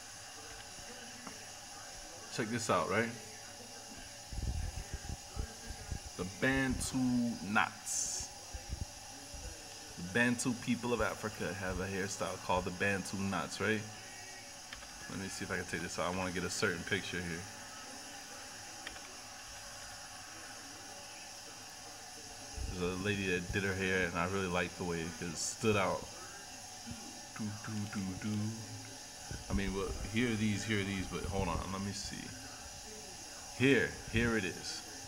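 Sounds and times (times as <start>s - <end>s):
faint steady hiss: 0.0s - 35.0s.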